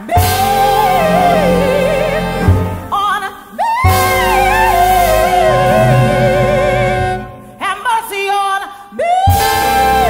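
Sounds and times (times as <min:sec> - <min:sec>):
woman singing with vibrato: 0:00.0 - 0:10.0
jazz band and strings: 0:03.8 - 0:07.8.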